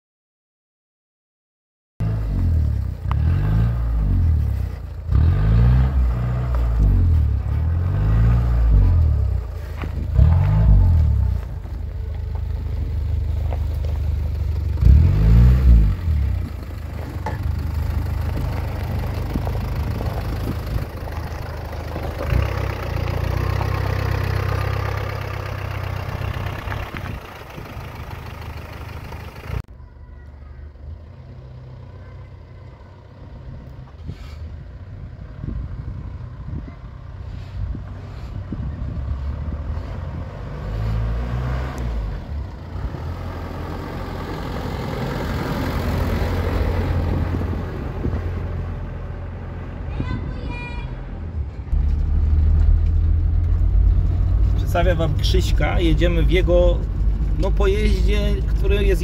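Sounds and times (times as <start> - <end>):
car engine revving: 2.0 - 29.6, 38.6 - 49.5, 51.7 - 59.0.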